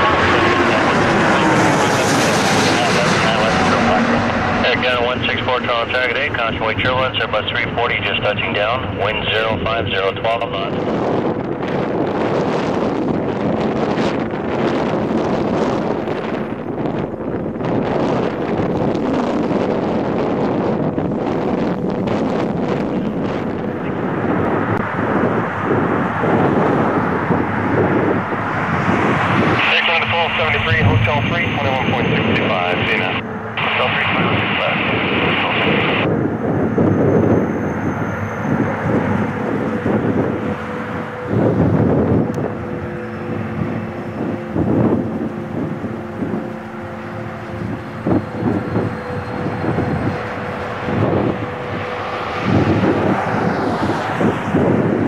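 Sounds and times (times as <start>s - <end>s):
jet engine steady tones: 0.0s - 55.0s
jet engines rumbling: 0.0s - 55.0s
wind buffeting microphone: 0.0s - 55.0s.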